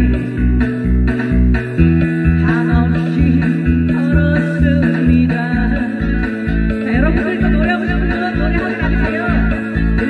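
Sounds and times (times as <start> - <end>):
backing track with bass beat: 0.0 - 10.0
woman singing through pa: 2.4 - 6.2, 6.8 - 10.0.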